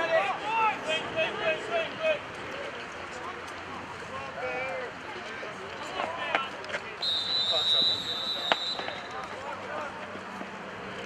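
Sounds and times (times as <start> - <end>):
shrill whistle blast: 7.0 - 9.2.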